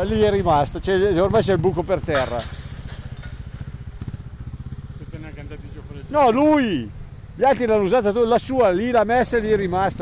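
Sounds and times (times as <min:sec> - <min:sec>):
motorcycle engine idling: 0:00.0 - 0:10.0.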